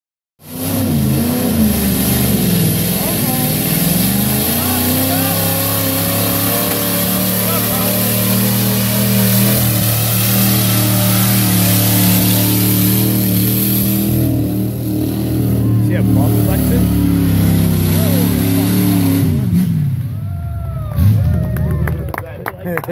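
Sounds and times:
pickup truck engine revving: 0.4 - 22.9.

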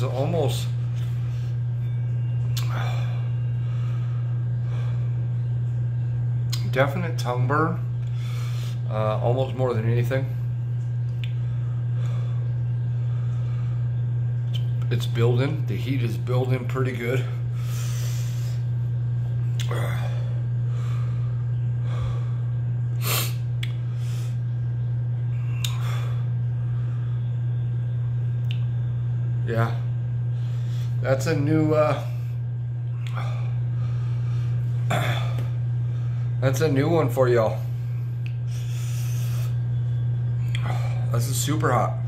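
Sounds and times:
steady low hum: 0.0 - 42.0
man breathing heavily: 2.6 - 5.5, 8.0 - 8.9, 11.4 - 14.0, 17.4 - 18.9, 19.6 - 24.4, 32.1 - 36.4, 37.6 - 39.7.

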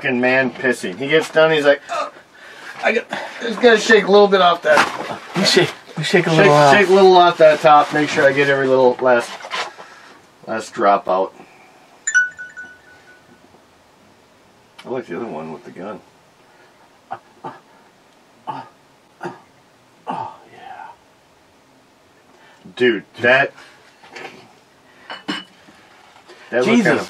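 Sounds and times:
bottle clinking on shot glass: 12.1 - 13.2
brief ringing tone: 12.1 - 13.4.

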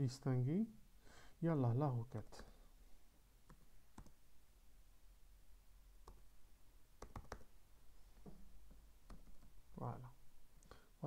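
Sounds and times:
keyboard keystroke clicks: 7.0 - 7.4.

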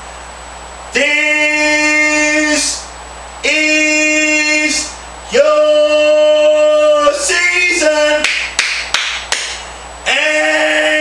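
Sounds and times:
man singing drawn-out note: 0.9 - 8.3, 10.0 - 11.0
hand claps: 8.2 - 9.7.

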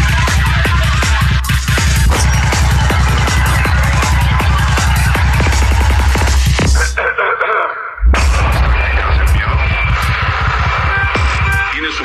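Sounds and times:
dark psytrance music: 0.0 - 7.0, 8.0 - 12.0.

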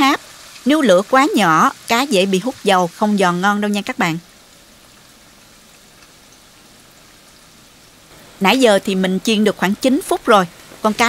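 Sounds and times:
fish sizzling in frying oil: 0.0 - 11.0.

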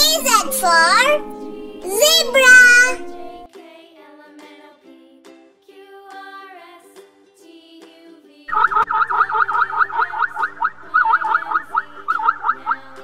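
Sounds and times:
light children's music: 0.0 - 13.0.

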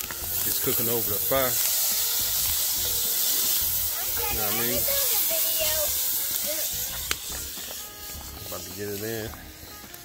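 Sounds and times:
meat sizzling in a pot: 0.0 - 10.0.

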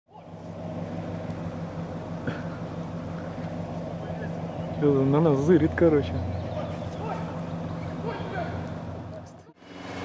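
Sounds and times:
vehicle engine idling: 0.1 - 10.0.

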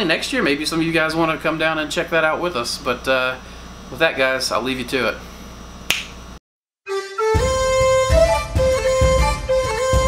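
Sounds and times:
finger snap: 5.9 - 6.2
bagpipe music with drone: 6.9 - 10.0.

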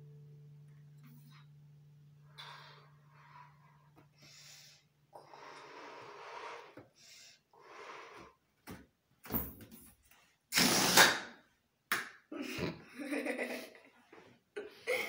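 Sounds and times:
air rushing from balloon neck: 5.3 - 6.8, 10.5 - 11.3
balloon being blown up: 10.5 - 11.4.

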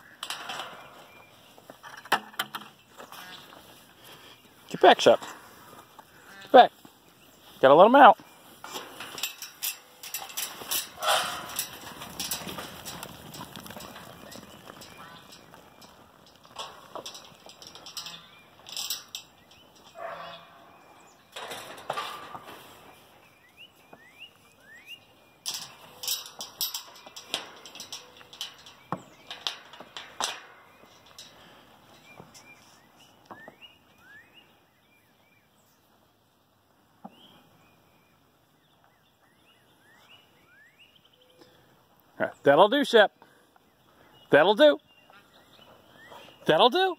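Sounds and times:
sheep moving: 0.0 - 41.2, 41.8 - 46.9
metal pen clattering: 8.7 - 14.0, 25.5 - 31.4
bird chirps: 22.6 - 26.1, 30.6 - 35.9, 37.1 - 41.7, 43.1 - 46.5.

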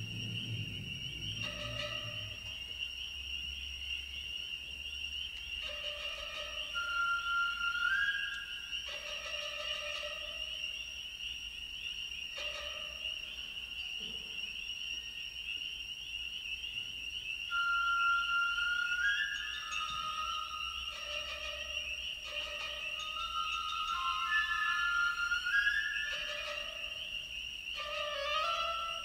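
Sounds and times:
high rising tone: 0.0 - 2.6
spring peepers chorus: 0.0 - 29.0.

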